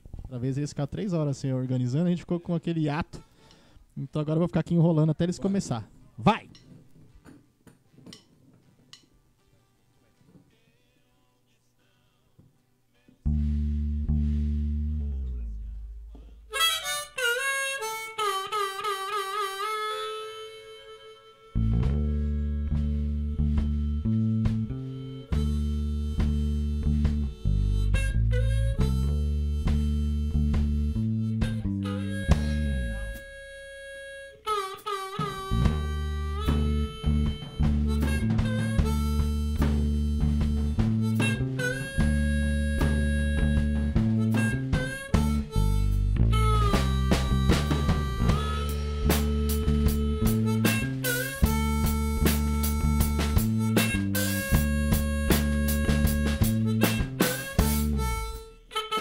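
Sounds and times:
blues harmonica: 3.0 - 3.8, 13.3 - 59.0
electric bass: 13.2 - 17.0, 21.6 - 33.6, 35.2 - 58.7
drums: 21.7 - 28.1, 28.8 - 31.7, 35.1 - 58.4
electric guitar: 35.2 - 59.0.

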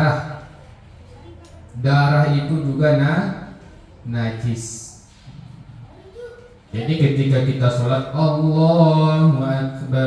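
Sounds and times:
man chanting into microphone: 7.0 - 10.0.

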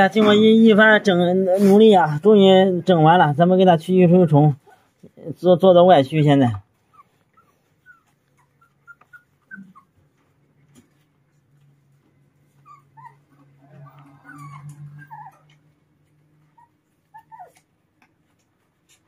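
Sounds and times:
puppies whimpering: 6.7 - 10.4, 12.4 - 19.0.

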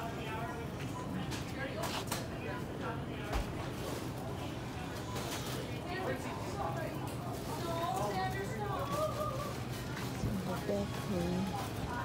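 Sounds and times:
grocery store background noise: 0.0 - 12.0.

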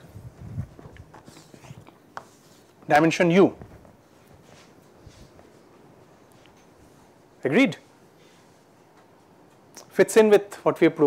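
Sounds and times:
faint footsteps on floor: 3.5 - 6.9.

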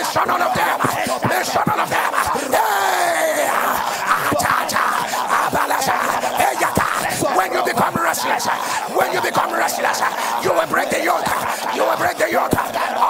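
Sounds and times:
voices shouting in prayer: 0.0 - 13.0.

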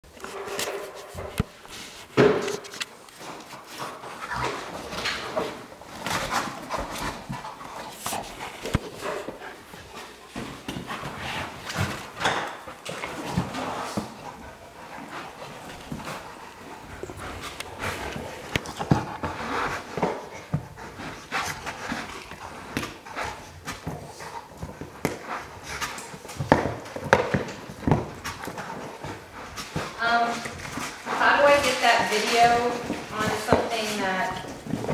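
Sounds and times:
dog chewing plastic toy: 0.2 - 33.7.

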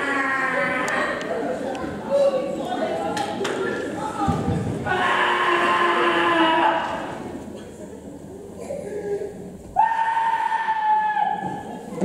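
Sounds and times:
long drawn-out vocal cry: 0.0 - 1.2, 4.9 - 7.1.

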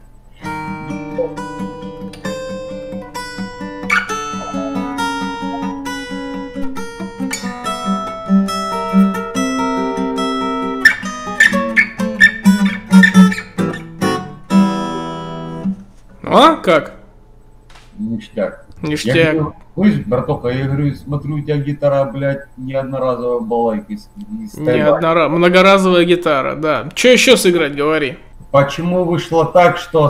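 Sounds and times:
fingerstyle acoustic guitar piece: 0.4 - 16.2.

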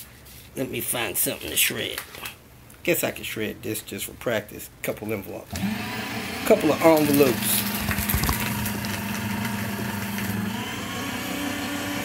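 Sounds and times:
paper shredder motor humming: 5.5 - 12.0.

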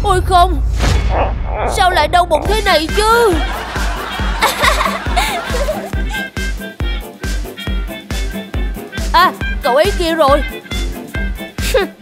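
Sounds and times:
comedic music with thumping beat: 1.8 - 12.0.

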